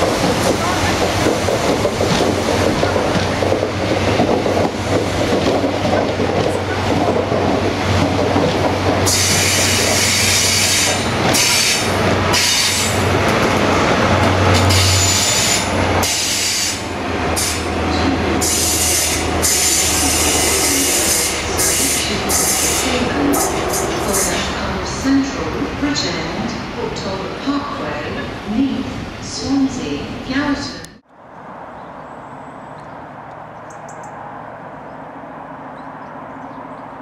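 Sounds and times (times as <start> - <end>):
train wheels rumbling on rails: 0.0 - 29.9.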